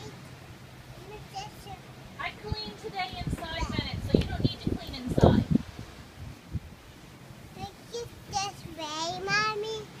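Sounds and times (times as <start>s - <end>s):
toddler sing-song call: 7.5s - 10.0s.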